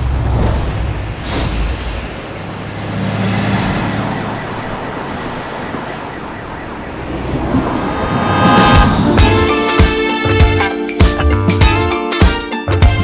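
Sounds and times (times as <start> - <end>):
traffic noise: 0.0 - 10.8
siren wailing: 3.4 - 10.1.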